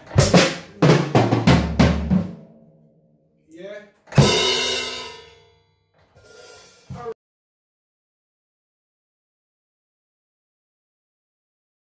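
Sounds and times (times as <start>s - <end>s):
cymbal crash: 4.2s - 5.5s.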